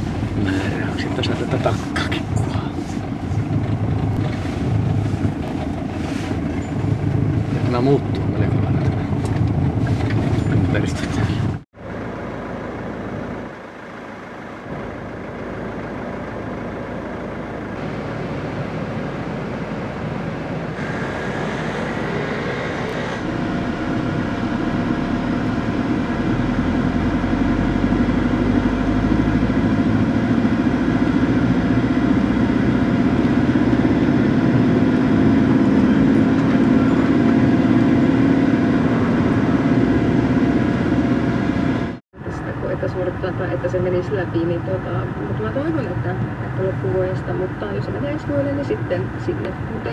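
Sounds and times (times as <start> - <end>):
car engine and road noise: 0.0 - 49.9.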